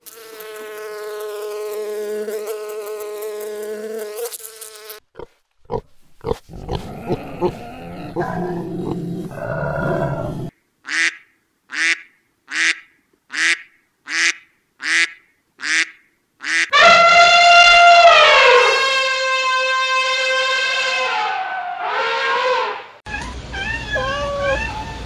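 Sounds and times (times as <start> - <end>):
duck quacking: 10.9 - 17.4
elephant trumpeting: 16.7 - 25.0.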